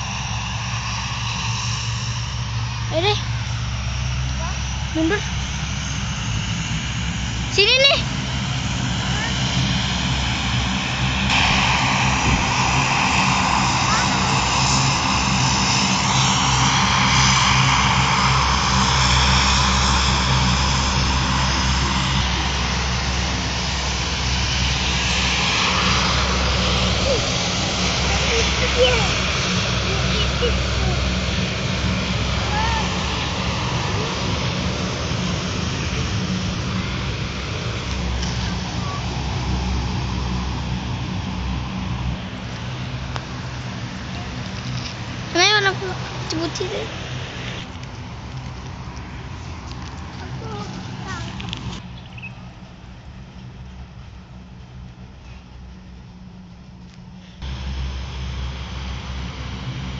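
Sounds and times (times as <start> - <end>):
low propeller drone: 0.0 - 59.9
turboprop engines roaring: 0.0 - 59.9.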